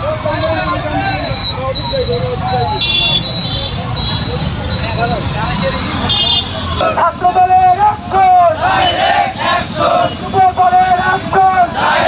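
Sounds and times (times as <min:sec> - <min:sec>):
crowd voices: 0:00.0 - 0:12.0
motorcycle engines rumbling: 0:00.0 - 0:12.0.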